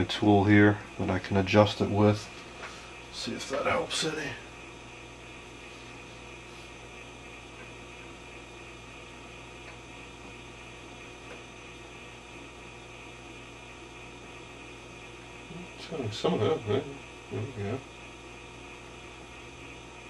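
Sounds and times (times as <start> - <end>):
television hum and hiss: 0.0 - 20.0.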